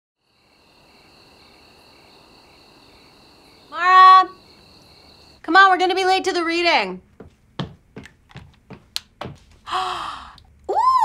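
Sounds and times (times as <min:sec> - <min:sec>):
crickets chirping: 0:00.2 - 0:06.4.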